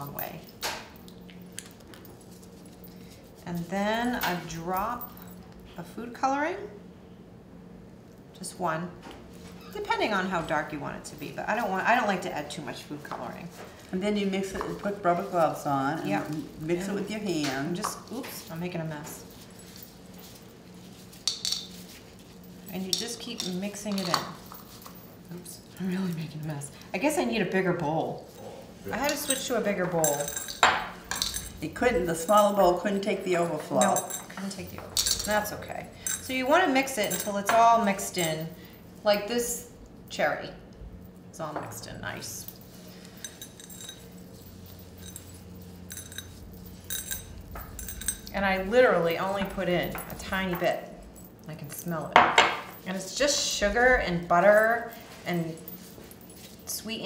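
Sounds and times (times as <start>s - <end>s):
low steady hum: 0.0s - 57.0s.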